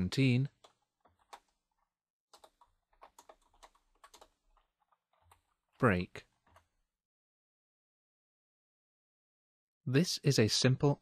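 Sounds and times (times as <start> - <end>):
computer keyboard typing: 0.5 - 6.7.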